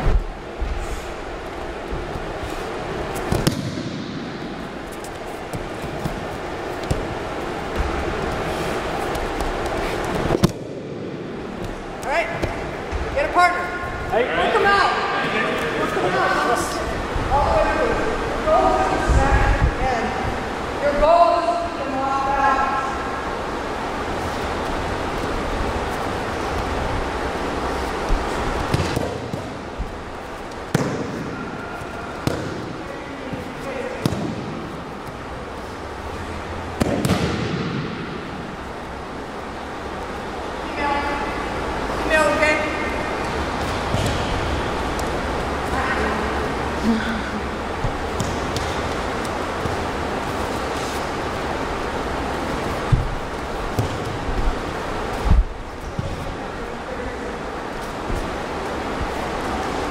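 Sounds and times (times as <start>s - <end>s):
hubbub of gym hall: 0.0s - 59.9s
steady background noise: 0.0s - 59.9s
body slapping onto mat: 3.2s - 4.2s, 9.0s - 13.1s, 28.0s - 29.6s, 32.2s - 35.2s, 36.8s - 38.0s, 52.8s - 54.5s.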